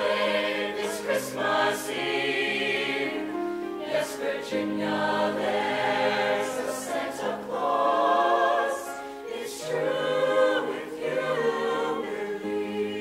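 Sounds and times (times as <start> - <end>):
choir singing in harmony: 0.0 - 13.0.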